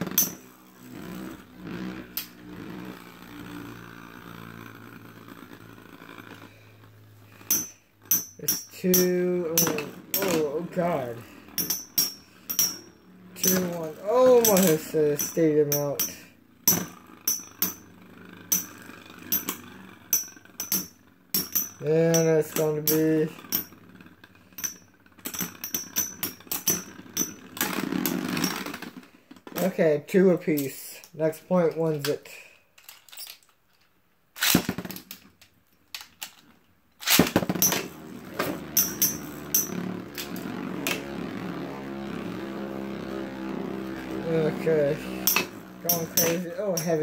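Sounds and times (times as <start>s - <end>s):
whir of spinning tops: 0.0s - 29.8s, 34.4s - 47.0s
spinning tops clinking metallically: 7.4s - 28.8s, 37.0s - 47.0s.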